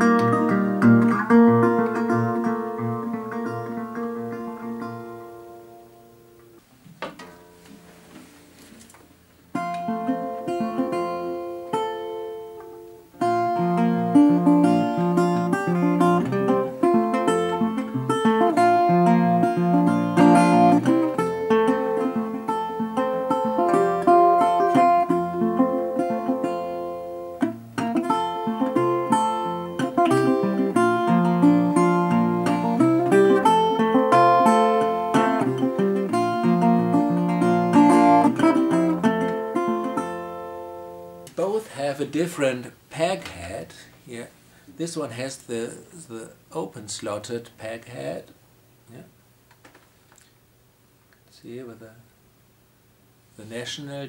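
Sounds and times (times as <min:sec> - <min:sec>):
fingerpicked resonator guitar: 0:00.0 - 0:44.2.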